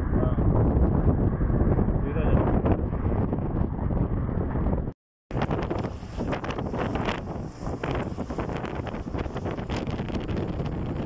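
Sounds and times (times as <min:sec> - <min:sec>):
car road noise: 0:00.0 - 0:11.0
wind buffeting microphone: 0:00.0 - 0:11.0.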